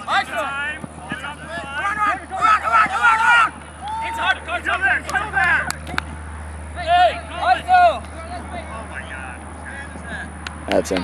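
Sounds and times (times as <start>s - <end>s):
people shouting: 0.0s - 6.0s, 6.8s - 10.1s
steady low hum: 0.0s - 11.0s.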